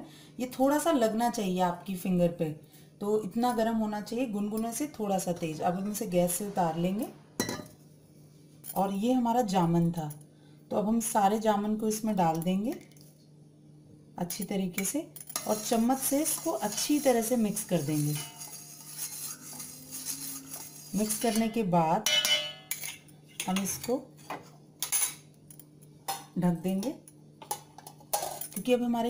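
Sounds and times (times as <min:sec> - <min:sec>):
metal pot clinking on counter: 0:07.4 - 0:07.7, 0:20.4 - 0:23.6
spoon scraping metal pot: 0:15.3 - 0:23.7.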